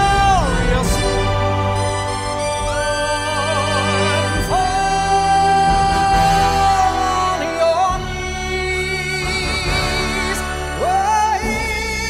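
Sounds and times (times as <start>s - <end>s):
sustained accompaniment chords: 0.0s - 12.0s.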